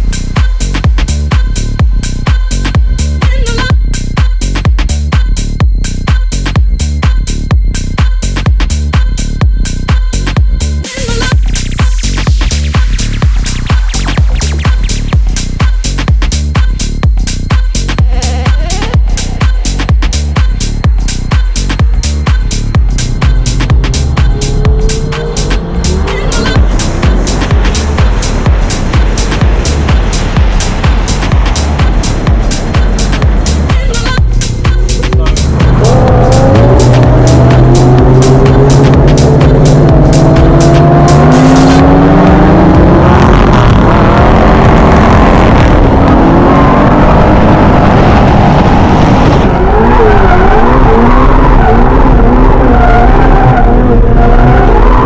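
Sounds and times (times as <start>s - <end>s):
electronic music with steady beat: 0.0s - 48.4s
car engine revving: 11.0s - 55.0s.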